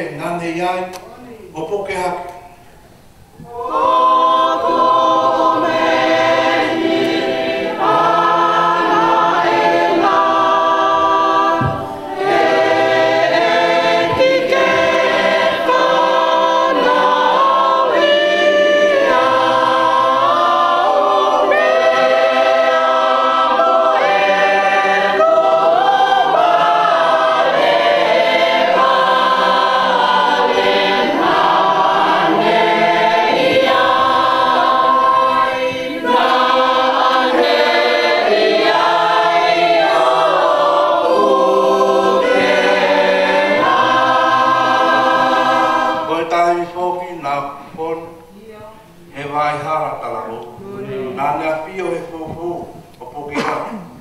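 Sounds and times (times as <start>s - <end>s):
group singing a hymn unaccompanied: 3.3s - 53.4s.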